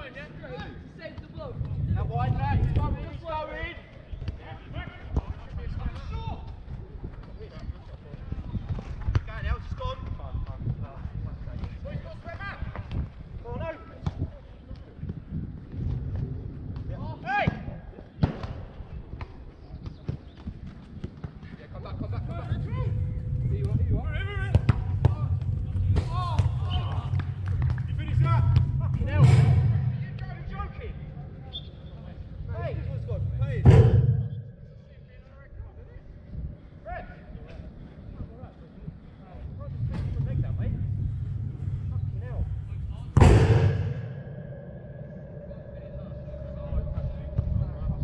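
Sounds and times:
low rumbling noise: 0.8s - 4.8s, 21.8s - 48.0s.

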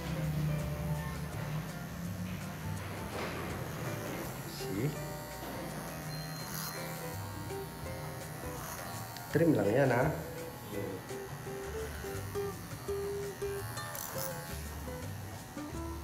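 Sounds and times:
electric hair clippers buzzing: 0.0s - 16.0s
guitar music: 0.0s - 16.0s.

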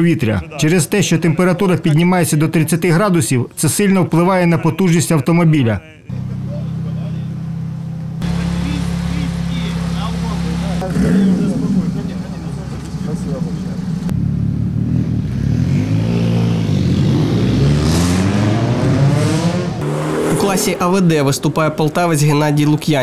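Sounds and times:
race car engine idling and revving: 6.1s - 22.0s.

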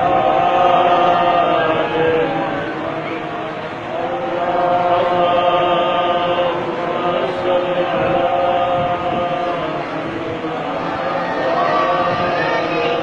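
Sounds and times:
men chanting: 0.0s - 13.0s.

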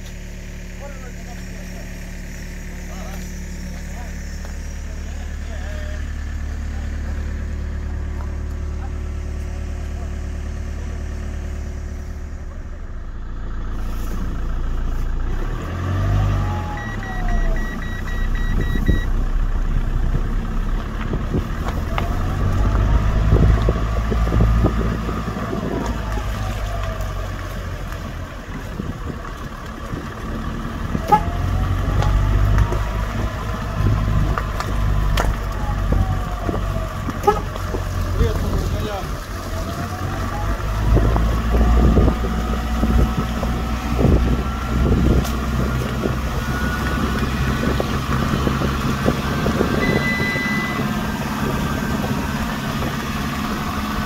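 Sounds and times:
heavy vehicle engine revving: 0.0s - 54.0s
rapid beeps: 16.7s - 19.1s, 49.8s - 50.8s.

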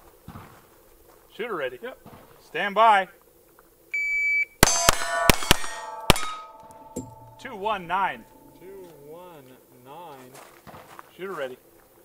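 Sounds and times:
pistol shots: 4.6s - 6.7s
steel target plate ringing: 4.6s - 8.8s.

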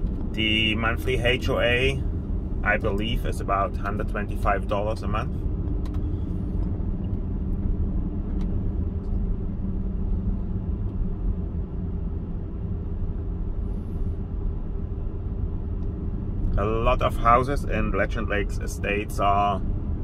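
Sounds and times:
car engine and tyre rumble: 0.0s - 20.0s
low hum: 0.0s - 20.0s.

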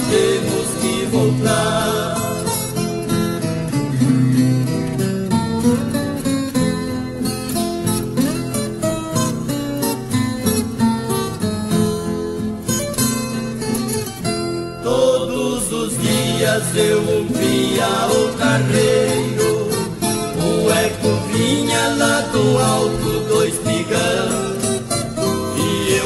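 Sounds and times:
acoustic guitars plucking and strumming: 0.0s - 26.0s.

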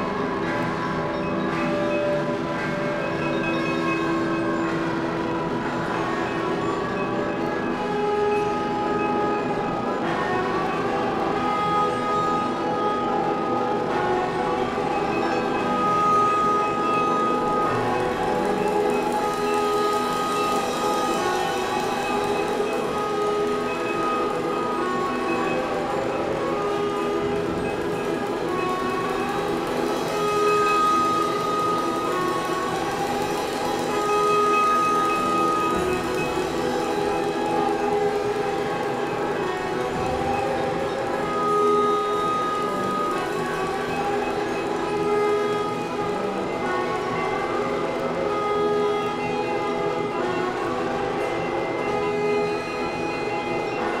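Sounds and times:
percussion ensemble music: 0.0s - 54.0s.

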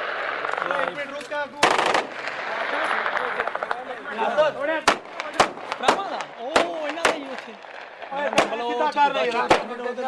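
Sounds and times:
voices: 0.3s - 10.0s
burst of rapid gunfire bangs: 1.6s - 3.8s, 4.7s - 10.0s.

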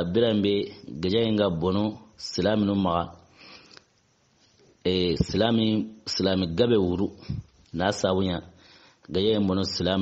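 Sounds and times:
man speaking: 0.0s - 3.3s, 4.8s - 10.0s.

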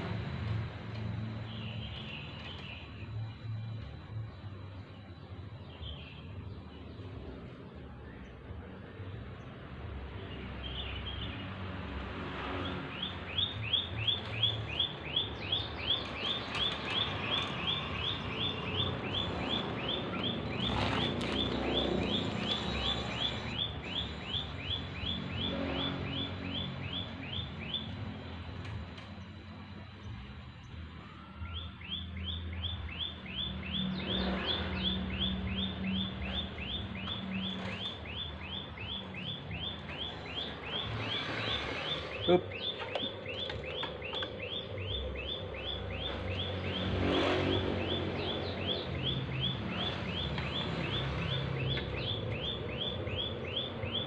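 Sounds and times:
bird chirping: 1.2s - 11.6s, 12.5s - 54.0s.

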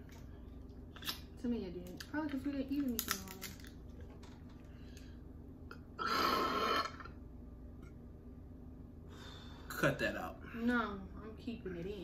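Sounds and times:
person burping: 6.0s - 7.2s.

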